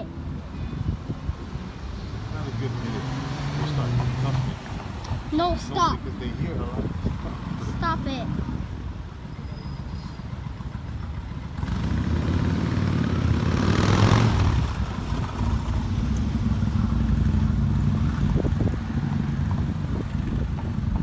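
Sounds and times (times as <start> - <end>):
traffic engines running: 0.0 - 21.0
vehicle passing: 1.4 - 8.7, 11.4 - 21.0.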